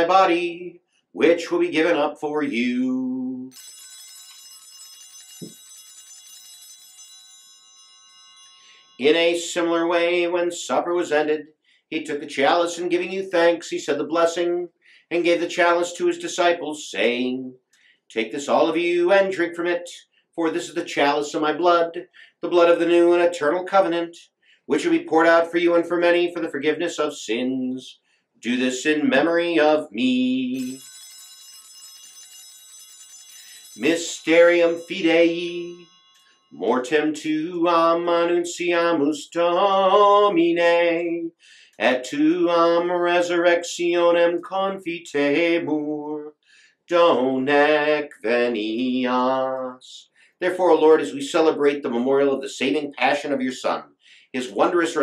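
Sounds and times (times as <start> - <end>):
altar bells chiming: 3.5 - 10.4, 30.5 - 38.0.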